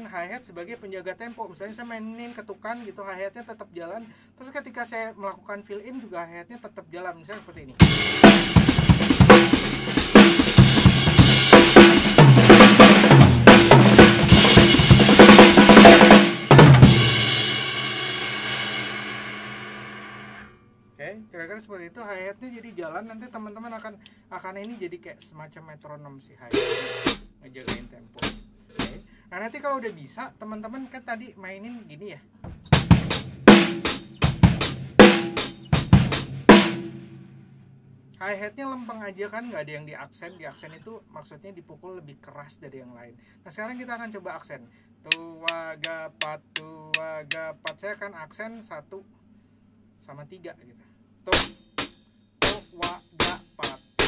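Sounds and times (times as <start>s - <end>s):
drum kit playing: 0.0s - 3.7s, 7.3s - 20.5s, 26.5s - 30.7s, 32.5s - 37.8s, 45.1s - 47.8s, 51.3s - 54.0s
hi-hat keeping time: 7.8s - 20.4s, 26.5s - 29.9s, 32.7s - 37.0s, 45.1s - 47.8s, 51.3s - 54.0s
cymbals and drums ringing: 7.8s - 20.6s, 26.5s - 29.2s, 32.6s - 37.6s, 45.1s - 47.8s, 51.3s - 54.0s.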